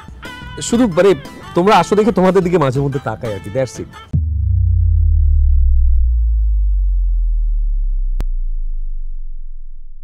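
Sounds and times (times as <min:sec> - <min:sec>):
deep synthesized bass boom: 0:04.1 - 0:10.0.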